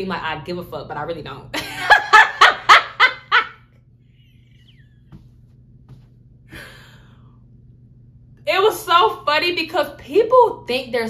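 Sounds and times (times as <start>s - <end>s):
woman laughing: 1.6s - 3.6s.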